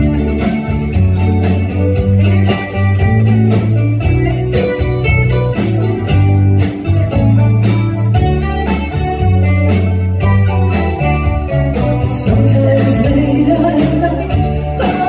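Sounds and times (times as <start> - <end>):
bass guitar: 0.0 - 15.0
country band playing: 0.0 - 15.0
guitar: 0.0 - 15.0
steady drum beat: 0.0 - 15.0.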